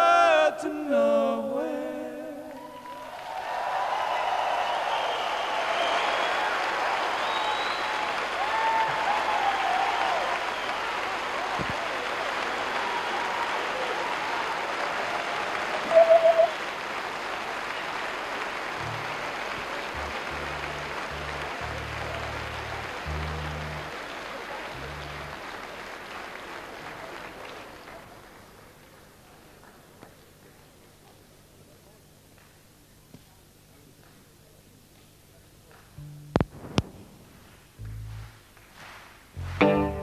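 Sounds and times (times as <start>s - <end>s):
audience applauding and cheering: 2.4s - 29.9s
whistles: 4.2s - 8.1s, 10.0s - 10.9s, 15.9s - 16.6s
low held notes: 18.8s - 25.7s, 36.0s - 38.5s, 39.4s - 40.0s.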